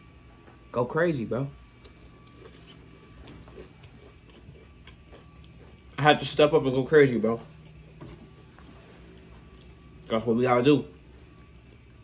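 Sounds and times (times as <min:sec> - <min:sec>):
chewing crunchy chips: 0:01.5 - 0:08.0, 0:09.0 - 0:10.2.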